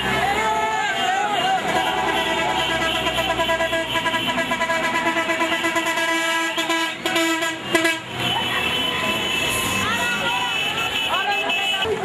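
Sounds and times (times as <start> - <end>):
voices calling: 0.0 - 5.8, 6.5 - 12.0
vehicle horns blasting: 0.0 - 12.0.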